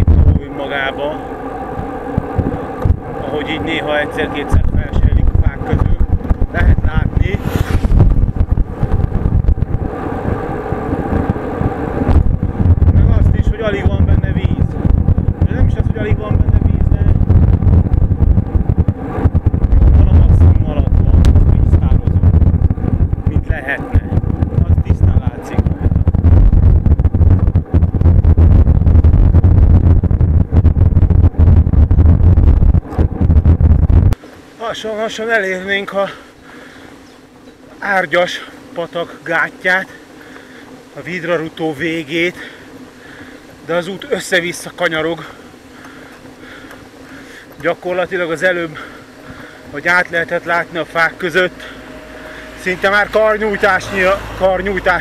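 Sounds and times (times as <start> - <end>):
vehicle engine: 0.0 - 34.2, 39.9 - 55.0
wind rumble on microphone: 0.0 - 34.5, 36.6 - 55.0.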